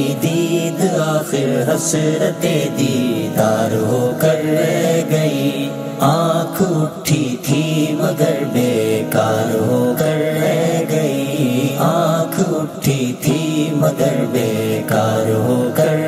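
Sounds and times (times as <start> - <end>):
man singing: 0.0 - 16.0.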